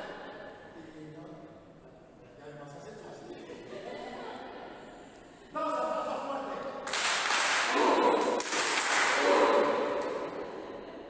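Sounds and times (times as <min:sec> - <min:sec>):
group applause: 0:06.8 - 0:10.6
voices cheering: 0:07.6 - 0:10.6.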